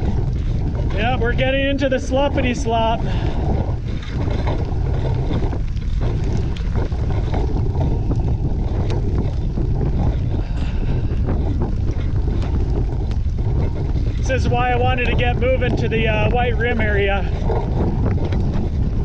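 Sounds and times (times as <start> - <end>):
bicycle tyres on muddy road: 0.0 - 19.0
wind rumble on microphone: 0.0 - 19.0.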